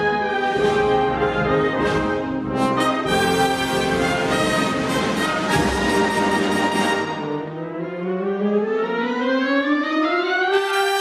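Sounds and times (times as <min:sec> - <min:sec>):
brass band slow march: 0:00.0 - 0:07.4.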